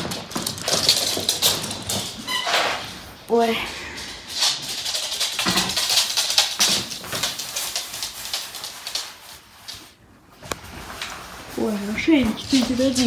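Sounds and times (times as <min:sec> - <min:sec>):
dogs scuffling: 0:00.0 - 0:13.0.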